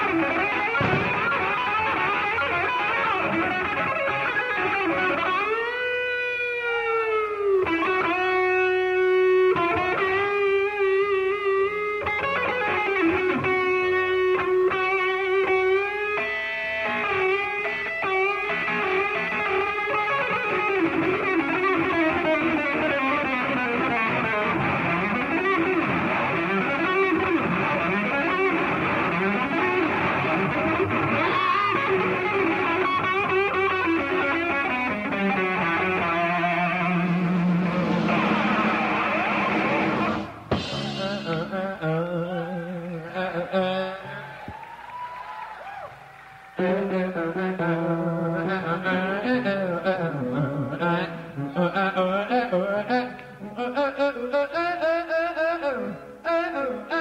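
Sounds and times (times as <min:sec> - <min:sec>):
live band playing: 0:00.0 - 0:45.0
distorted electric guitar solo: 0:00.0 - 0:57.0.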